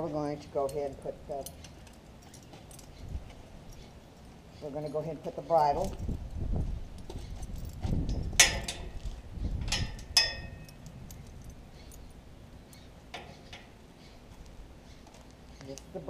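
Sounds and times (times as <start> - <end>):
metal bridle hardware clinking: 0.6 - 5.1, 6.9 - 13.8.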